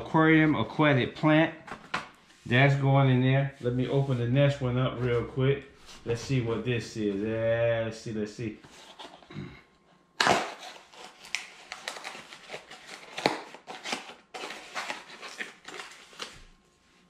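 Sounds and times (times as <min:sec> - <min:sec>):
packaging tearing and crinkling: 0:10.2 - 0:16.5.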